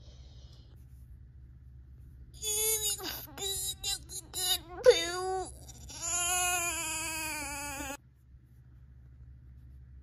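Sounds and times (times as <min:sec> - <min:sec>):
baby crying: 0:04.2 - 0:08.0.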